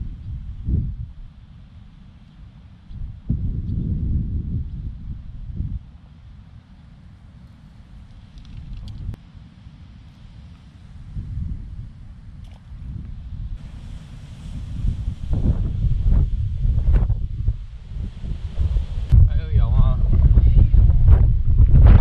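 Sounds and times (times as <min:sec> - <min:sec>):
wind buffeting microphone: 0:00.0 - 0:01.5, 0:02.8 - 0:06.0, 0:07.8 - 0:09.2, 0:10.6 - 0:22.0.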